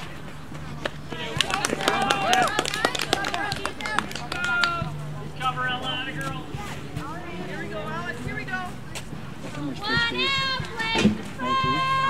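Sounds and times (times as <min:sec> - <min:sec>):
children calling out and cheering: 0:09.9 - 0:12.0.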